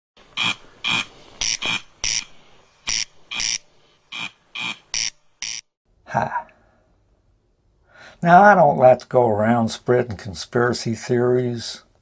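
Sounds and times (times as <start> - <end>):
corncrake rasping calls: 0.3 - 5.7.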